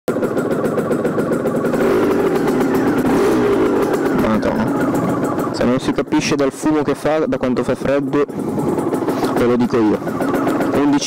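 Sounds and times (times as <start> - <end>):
small motorcycle engine idling: 0.1 - 11.0.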